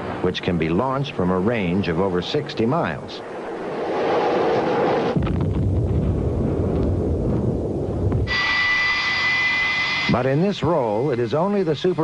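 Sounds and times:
aircraft high-pitched whine: 0.0s - 5.2s, 8.1s - 12.0s
aircraft low rumble: 0.0s - 12.0s
aircraft rushing roar: 0.0s - 12.0s.

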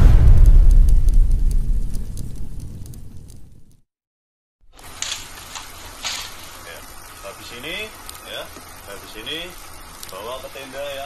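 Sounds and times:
outdoor background noise: 4.6s - 11.0s.

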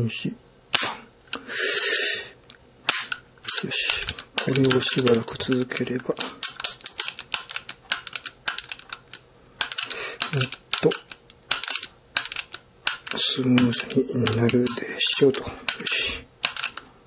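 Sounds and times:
metal clicks and rattles: 2.9s - 16.9s.

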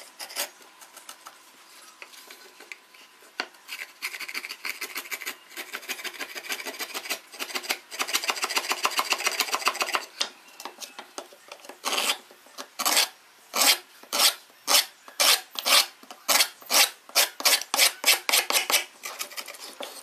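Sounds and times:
chisel scraping wood: 11.8s - 12.2s, 12.8s - 20.0s.

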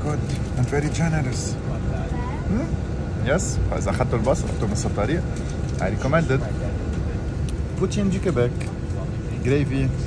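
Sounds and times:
bus engine rumble: 0.0s - 10.0s.

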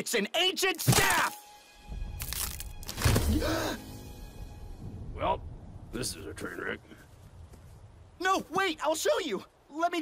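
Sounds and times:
wooden staff cracking and splintering: 0.7s - 1.4s, 2.2s - 3.6s.

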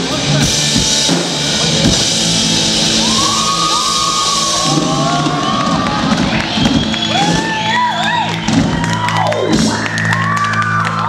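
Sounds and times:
audience cheering and whooping: 2.8s - 11.0s.

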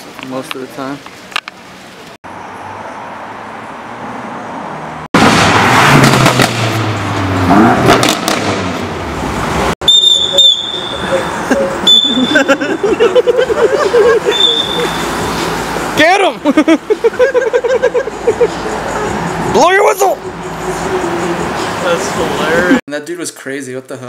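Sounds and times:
whistle blasts: 9.8s - 12.6s, 14.3s - 15.2s.

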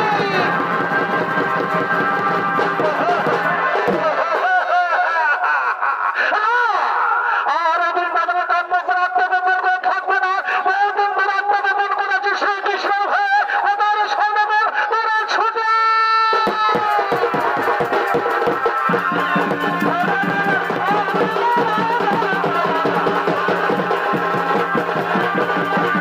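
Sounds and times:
drum strokes: 0.0s - 4.7s, 16.4s - 26.0s.

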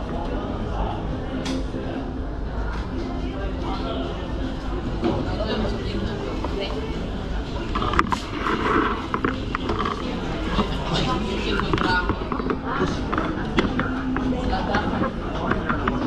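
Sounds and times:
indistinct chatter of people: 0.0s - 16.0s
steady background hum: 0.0s - 16.0s.

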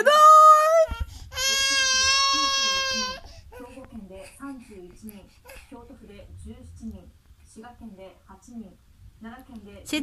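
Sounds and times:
infant crying: 0.8s - 3.7s.

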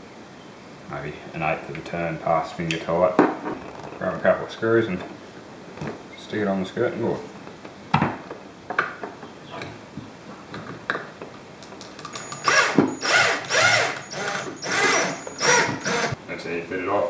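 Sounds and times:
cordless drill driving screws: 12.1s - 16.2s.

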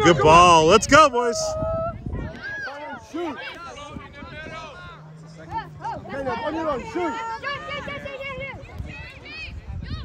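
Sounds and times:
voices calling and chatter: 0.0s - 10.0s.

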